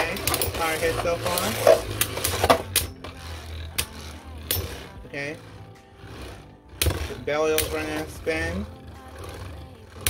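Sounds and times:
low whir of spinning tops: 0.0s - 10.0s.

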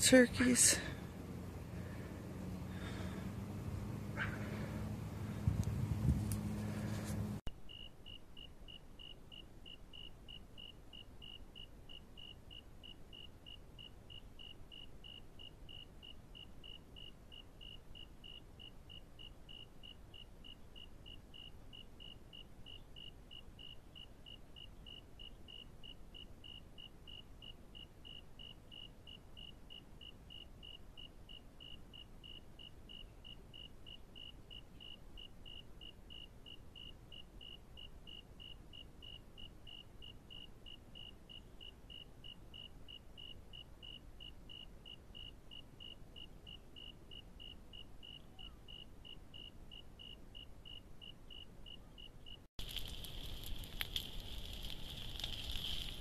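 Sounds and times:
low background rumble: 0.0s - 7.4s.

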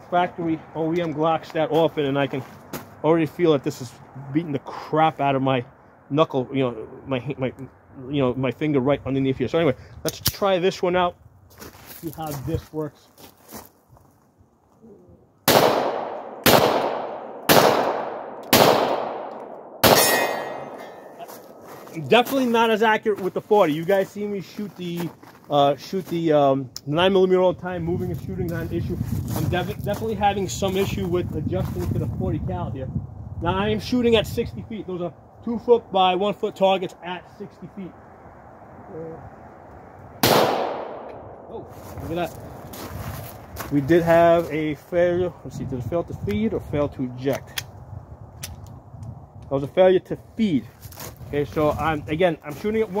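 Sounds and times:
pistol shots with echo: 15.4s - 21.1s, 40.2s - 41.5s.

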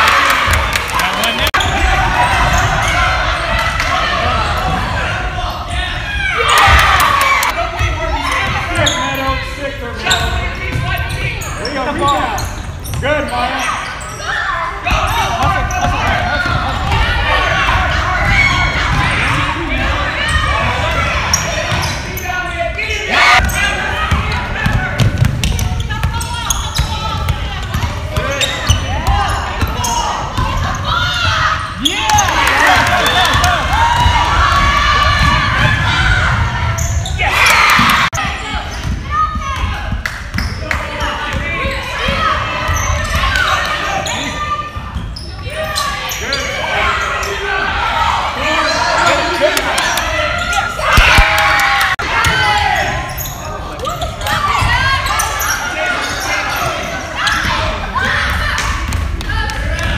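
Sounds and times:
people shouting and cheering: 0.0s - 59.9s
basketball bouncing on gym floor: 23.4s - 29.7s.

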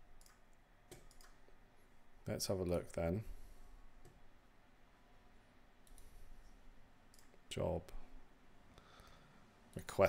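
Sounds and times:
computer mouse clicks: 0.2s - 1.4s, 5.8s - 6.1s, 7.1s - 7.4s.

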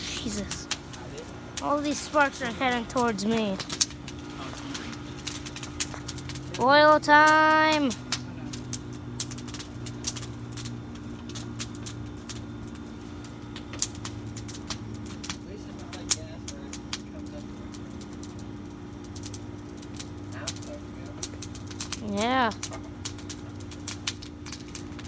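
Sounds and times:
campfire crackling and popping: 0.0s - 25.0s
steady low hum: 0.0s - 25.0s.

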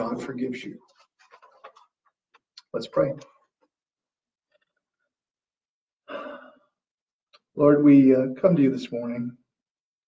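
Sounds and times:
man sighing: 6.0s - 6.7s.

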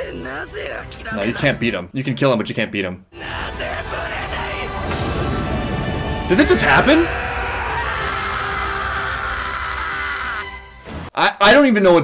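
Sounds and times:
soundtrack music: 3.2s - 11.1s
person screaming: 6.4s - 10.6s.

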